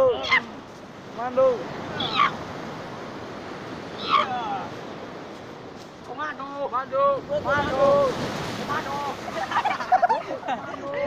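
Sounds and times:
surf at shore: 0:00.0 - 0:11.0
people calling out: 0:04.0 - 0:04.7.

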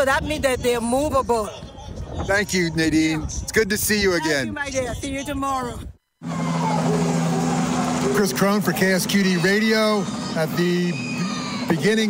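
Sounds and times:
street noise: 0:04.5 - 0:12.0
helicopter hovering drone: 0:06.2 - 0:12.0.

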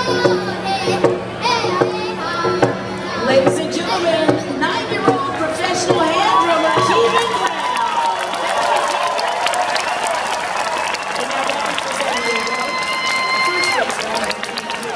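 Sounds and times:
boy singing through a microphone: 0:00.0 - 0:06.2
crowd cheering and clapping: 0:04.6 - 0:14.9.

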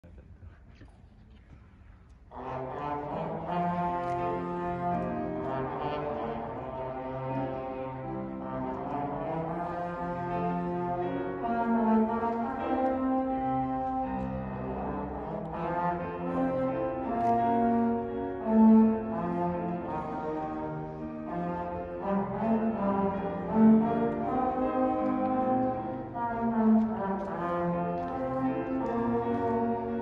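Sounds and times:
children playing trombones: 0:02.3 - 0:30.0.

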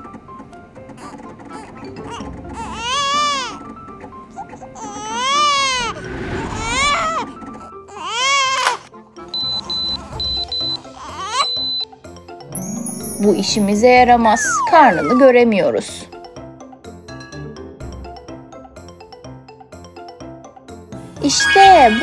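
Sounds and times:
children's background music: 0:00.0 - 0:22.0
baby crying: 0:01.0 - 0:03.7, 0:04.4 - 0:08.8, 0:10.8 - 0:11.6, 0:14.2 - 0:15.6, 0:21.4 - 0:22.0.

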